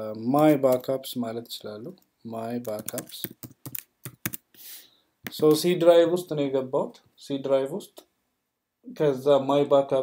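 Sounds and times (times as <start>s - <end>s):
computer keyboard typing: 2.6s - 4.5s.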